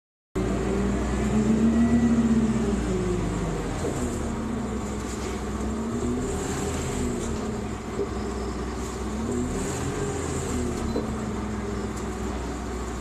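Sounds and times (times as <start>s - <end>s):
bus engine: 0.4s - 13.0s
road rumble: 0.4s - 13.0s.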